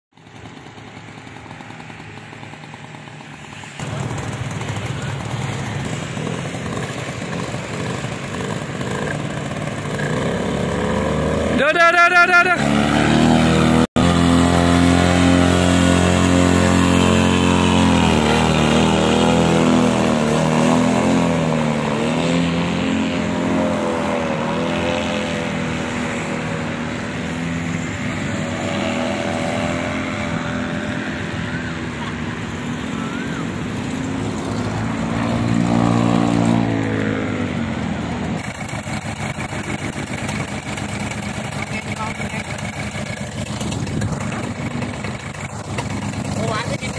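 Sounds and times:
paramotor engine and propeller: 0.1s - 46.9s.

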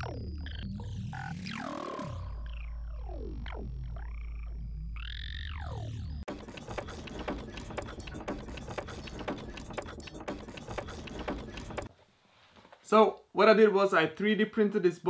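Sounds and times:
rapid clicks and rattles: 6.3s - 11.9s.

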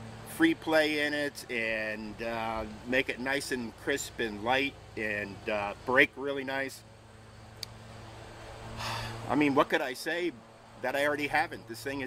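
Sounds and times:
steady low hum: 0.0s - 12.0s
faint click: 7.6s - 7.8s
man breathing in: 8.8s - 9.2s.

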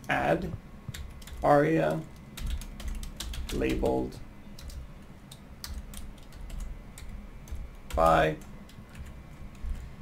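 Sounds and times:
typing on computer keyboard: 0.9s - 4.0s, 4.6s - 9.9s.

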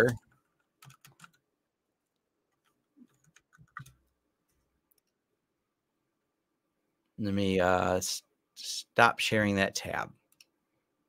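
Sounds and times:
computer keyboard keystrokes: 0.8s - 1.4s, 3.1s - 4.0s.

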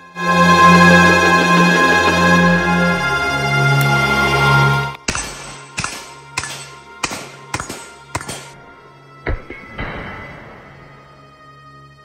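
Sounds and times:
background music: 0.0s - 12.0s
rifle shots echoing: 5.0s - 10.9s.

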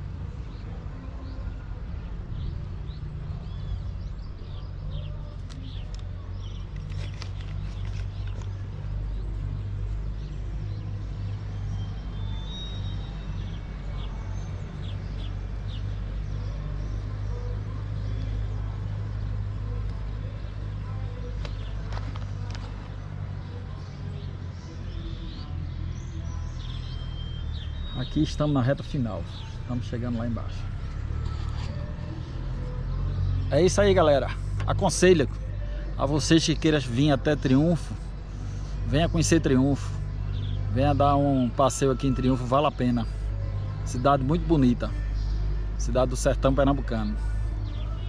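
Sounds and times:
birds chirping: 0.0s - 48.0s.

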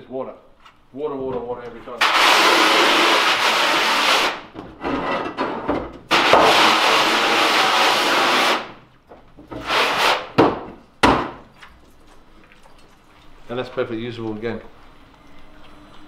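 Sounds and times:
water spray gun hissing: 2.0s - 4.4s
sharp knocks: 10.3s - 11.4s.

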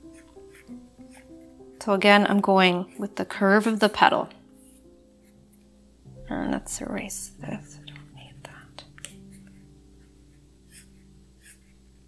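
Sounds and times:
faint low hum: 5.2s - 12.0s.

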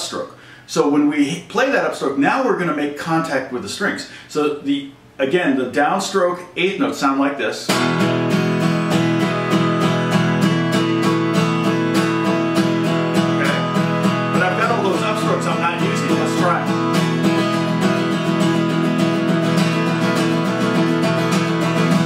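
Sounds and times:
acoustic guitar strummed chord: 7.7s - 22.0s.

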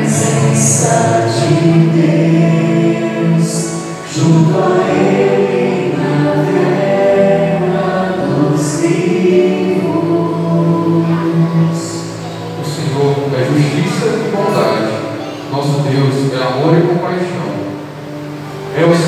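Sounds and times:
group of voices singing: 0.0s - 15.1s.

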